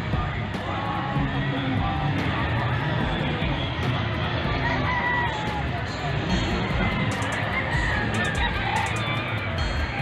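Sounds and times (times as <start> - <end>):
crowd noise: 0.0 - 10.0
rooster crowing: 4.6 - 5.7, 7.2 - 9.5.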